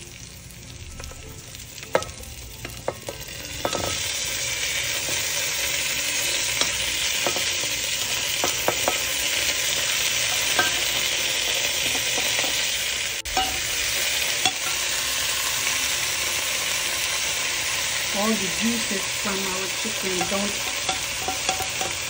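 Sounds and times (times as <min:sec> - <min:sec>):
chicken sizzling in hot oil: 0:00.0 - 0:22.0
metal tongs clicking against pot: 0:06.6 - 0:07.5, 0:20.1 - 0:22.0.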